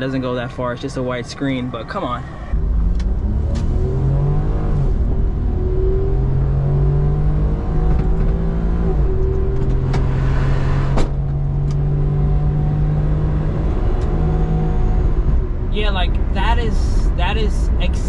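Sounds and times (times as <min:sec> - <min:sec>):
car engine humming: 0:00.0 - 0:18.0.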